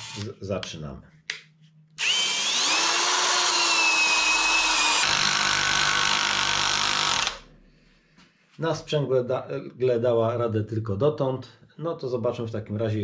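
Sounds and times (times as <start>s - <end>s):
drill driving screw into wood: 0.0s - 0.3s, 2.0s - 7.5s.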